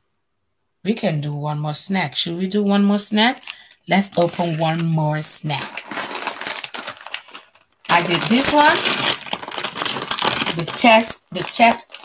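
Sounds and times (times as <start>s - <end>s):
plastic snack bag crinkling: 3.0s - 12.0s.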